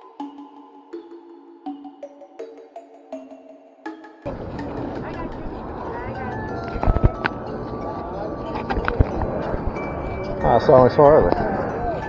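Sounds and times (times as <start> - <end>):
faint voices: 4.3 - 12.0
wind rumble on microphone: 4.3 - 12.0.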